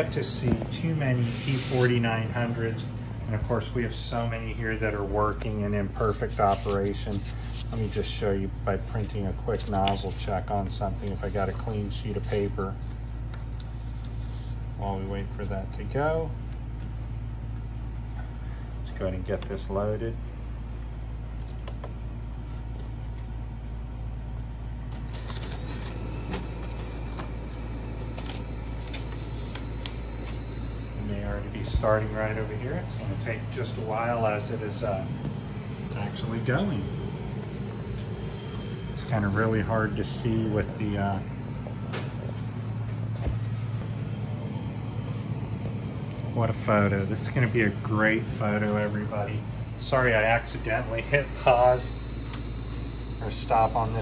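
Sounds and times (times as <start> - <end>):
higher mechanical whine: 0.0 - 54.0
printer humming with faint whine: 0.0 - 54.0.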